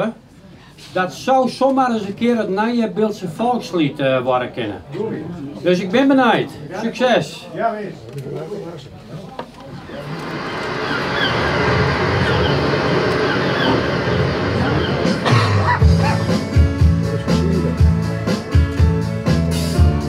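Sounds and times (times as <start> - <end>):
instrumental music: 14.5 - 20.0
bass line and steady beat: 14.9 - 20.0.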